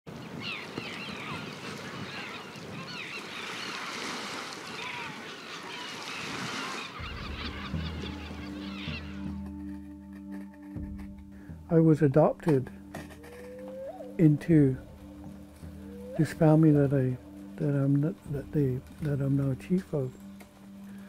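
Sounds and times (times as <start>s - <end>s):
flock of birds calling: 0.1s - 10.6s, 12.9s - 21.0s
music with low sustained tones: 7.0s - 21.0s.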